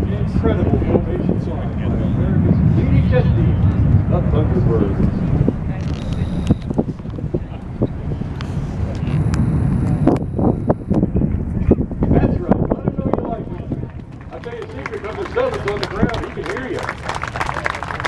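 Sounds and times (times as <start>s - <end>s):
distant jet rumble: 0.0s - 18.0s
faint crowd voices: 0.0s - 18.0s
wind on microphone: 0.0s - 18.0s.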